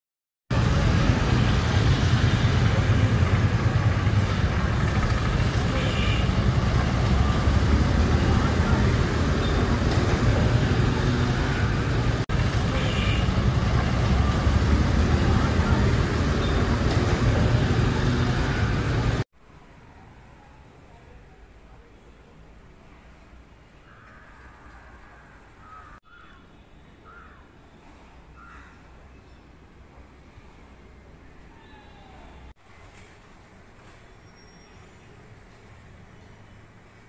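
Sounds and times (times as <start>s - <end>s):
road traffic rumble and hiss: 0.5s - 37.0s.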